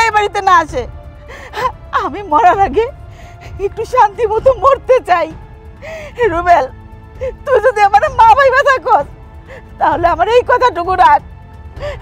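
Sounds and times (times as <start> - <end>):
soft background music: 0.0 - 12.0
catching breaths: 1.2 - 1.9, 3.0 - 3.7, 5.7 - 6.2, 9.4 - 9.8, 11.6 - 12.0
woman crying out in distress: 1.2 - 3.9, 7.0 - 8.3, 11.6 - 12.0.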